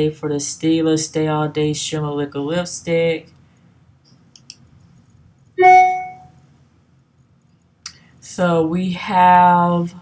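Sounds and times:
single musical note: 5.6 - 6.4.

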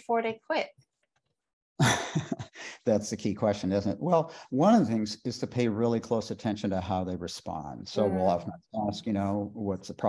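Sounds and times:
man sighing: 1.8 - 3.0.

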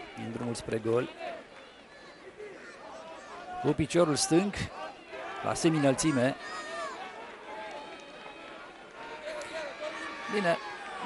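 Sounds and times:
distant crowd voices: 0.0 - 11.0.

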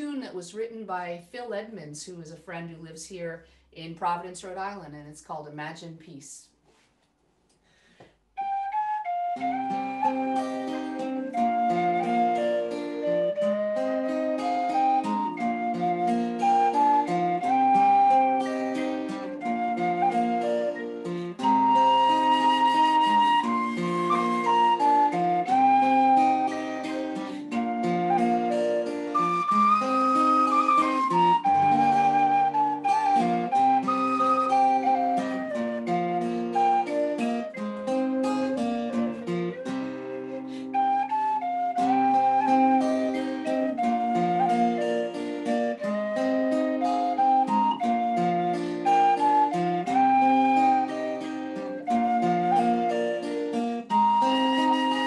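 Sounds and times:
acoustic guitar accompaniment: 7.6 - 55.0
tin whistle melody: 8.4 - 55.0.

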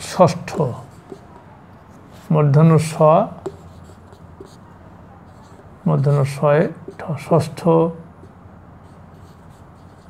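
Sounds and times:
low steady room hum: 0.0 - 10.0
marker pen writing on whiteboard: 0.0 - 10.0.

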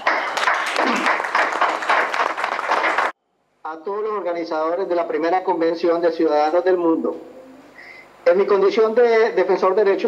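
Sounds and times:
people applauding: 0.0 - 3.2.

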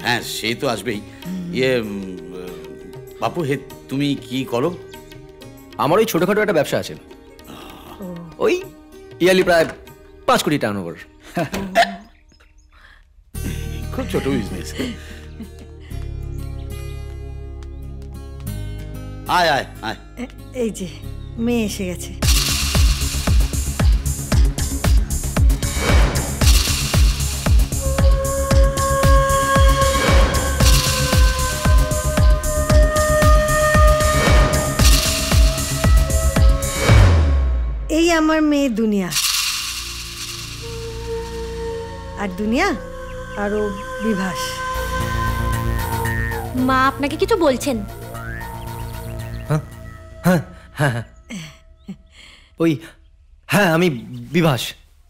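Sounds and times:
faint background film music: 0.0 - 52.9
shaker swish: 22.2 - 28.0, 39.1 - 41.9.

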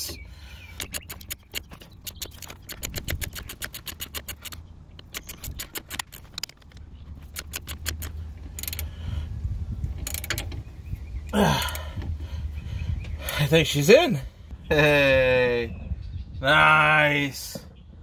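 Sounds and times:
hand ratchet clicking: 0.8 - 9.0, 10.0 - 10.6.

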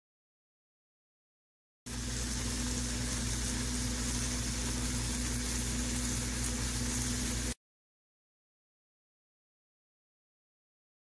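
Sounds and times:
meatballs sizzling in hot oil: 1.9 - 7.6.

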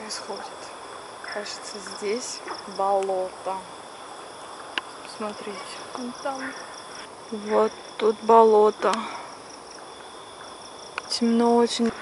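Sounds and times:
night insects chorus: 0.0 - 12.0.

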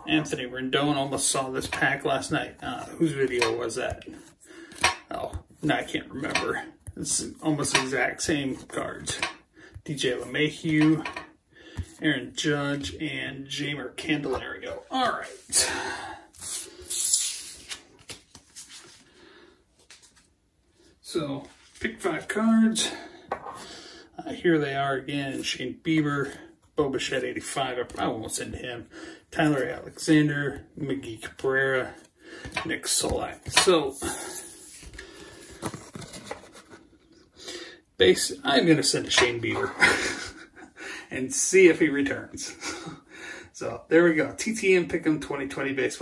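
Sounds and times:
cardboard cards shuffling: 16.3 - 19.0, 32.4 - 36.9.

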